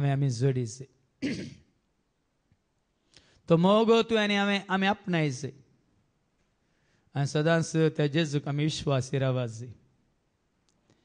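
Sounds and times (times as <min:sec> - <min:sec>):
man clearing his throat: 0:01.2 - 0:01.7.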